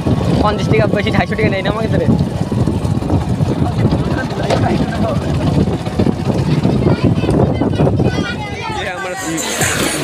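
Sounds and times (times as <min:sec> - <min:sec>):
motorcycle engine running: 0:00.0 - 0:08.9
faint voices: 0:03.2 - 0:10.0.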